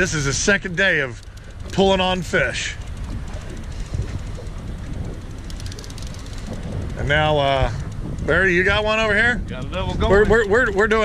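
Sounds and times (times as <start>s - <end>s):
faint rapid clicking: 0.0s - 11.0s
wind buffeting microphone: 0.0s - 11.0s.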